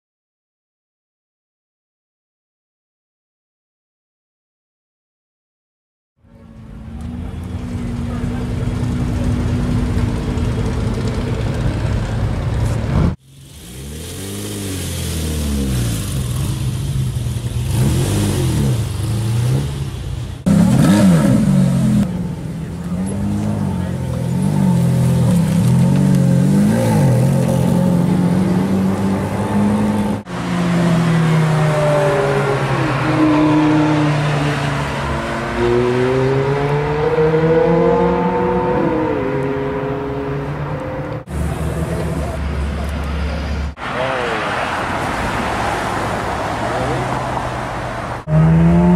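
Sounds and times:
sports car engines revving: 6.4s - 48.9s.

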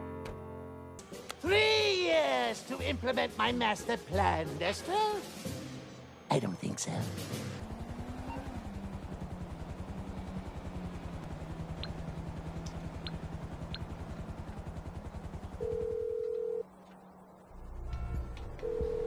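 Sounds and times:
phone ringback tone: 15.6s - 16.7s, 18.6s - 19.0s.

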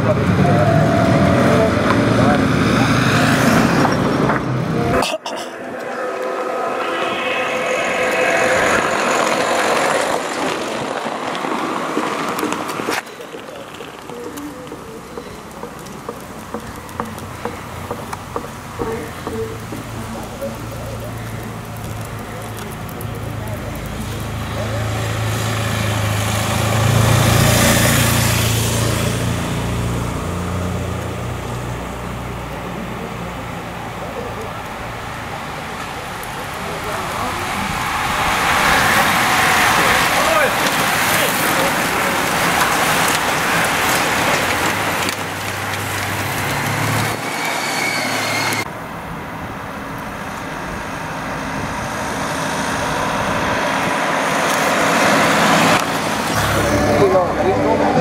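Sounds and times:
van driving past: 0.0s - 49.4s.

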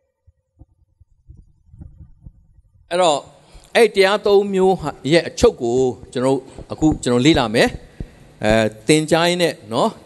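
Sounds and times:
soft low thumps: 0.3s - 2.9s, 5.4s - 8.9s.

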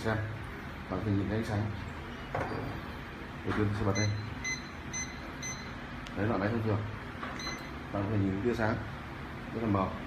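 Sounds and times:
short high beeps: 4.0s - 5.8s, 7.4s - 7.8s.

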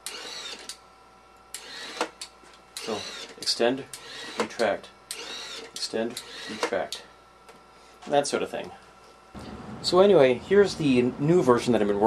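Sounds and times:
small electric motor and gears: 0.0s - 0.8s, 1.6s - 2.2s, 2.8s - 6.9s.

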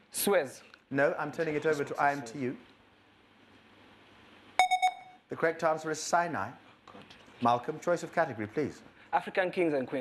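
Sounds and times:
rapid electronic beeps: 4.6s - 5.2s.

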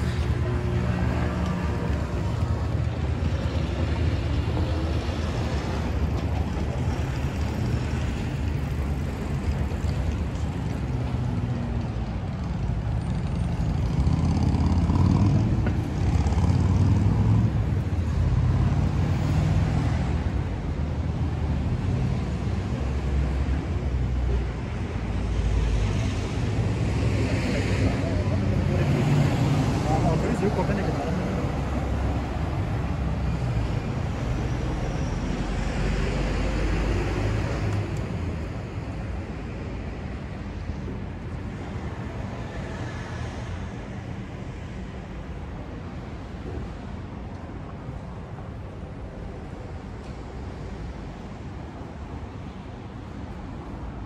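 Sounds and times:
road traffic passing: 0.0s - 54.0s.

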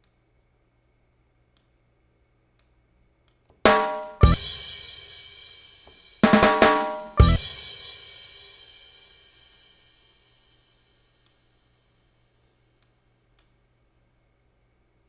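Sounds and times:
drum fill: 3.7s - 5.4s, 6.2s - 8.6s
cymbal crash ringing: 3.7s - 11.1s
faint clicks: 12.8s - 13.6s.

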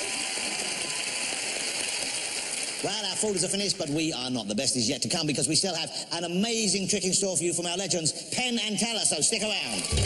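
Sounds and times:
audience applauding: 0.0s - 4.1s, 9.6s - 10.0s.

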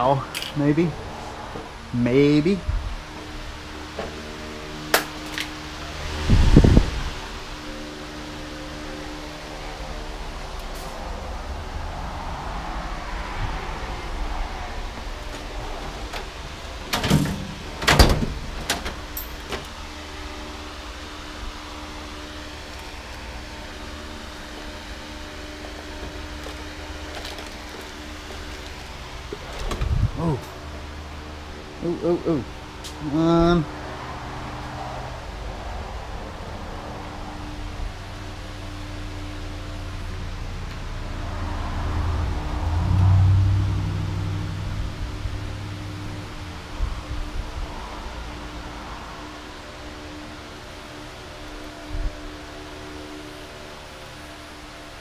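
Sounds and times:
steady hum: 0.0s - 55.0s
metal tools clanking: 16.9s - 19.7s.

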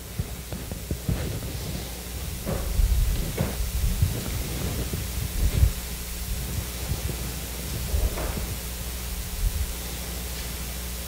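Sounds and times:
short crackle: 0.0s - 8.8s
low rumbling: 0.0s - 10.3s.

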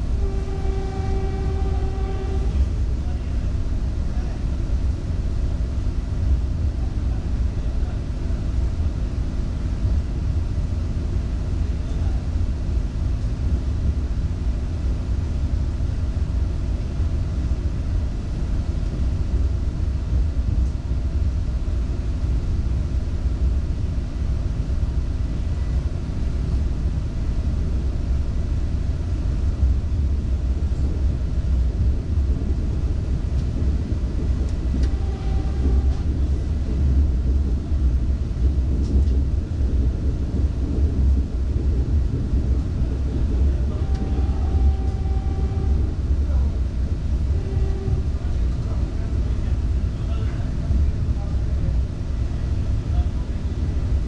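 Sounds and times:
electric train rumbling: 0.0s - 54.0s.

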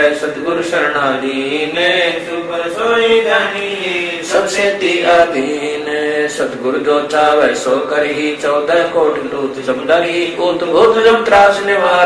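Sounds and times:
man chanting devotional verses: 0.0s - 12.0s.

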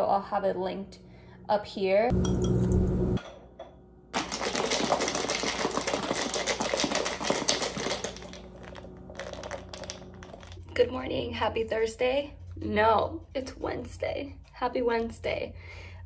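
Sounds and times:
low hum: 0.9s - 4.1s
glass jar rattling and sloshing: 4.2s - 10.7s.

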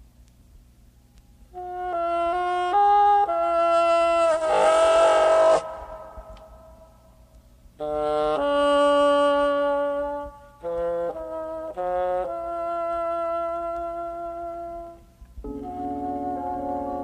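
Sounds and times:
jazz horn playing held notes: 1.5s - 6.8s, 7.8s - 17.0s
soft low jazz backing: 6.1s - 17.0s.

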